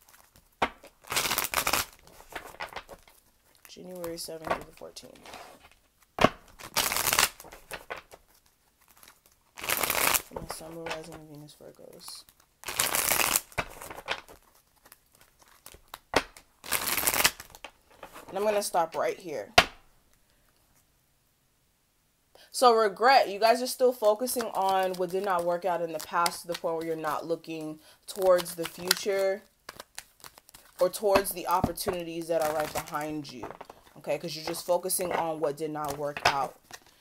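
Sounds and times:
riffle of cards: 0.0 - 11.3, 12.0 - 18.3
cards snapping: 6.2 - 11.3, 12.6 - 18.2, 24.2 - 27.3, 28.1 - 37.0.

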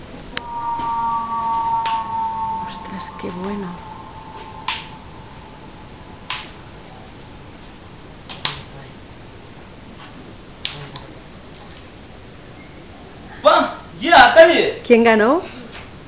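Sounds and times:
low steady hiss: 0.1 - 15.7
spinning tops humming: 0.4 - 7.5.

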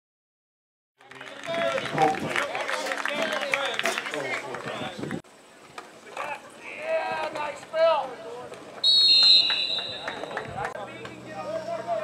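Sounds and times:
people shouting and calling: 6.0 - 12.0.

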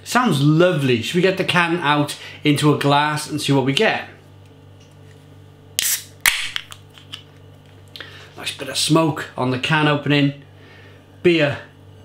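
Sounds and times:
can hiss: 5.8 - 6.1.

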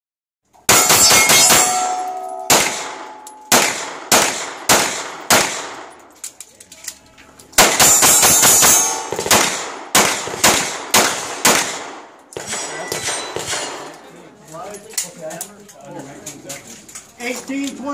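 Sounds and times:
steel targets ringing: 0.7 - 3.6, 7.8 - 9.2
pistol shots: 0.7 - 6.0, 7.6 - 13.9.

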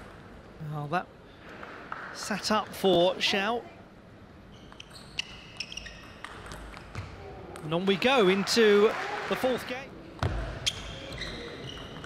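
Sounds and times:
shoe squeaks: 4.5 - 6.3, 10.6 - 12.0.

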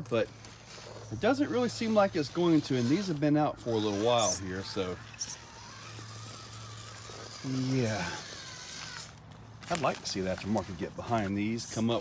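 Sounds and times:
electric motors humming: 0.0 - 12.0
gear train whining: 0.0 - 12.0.

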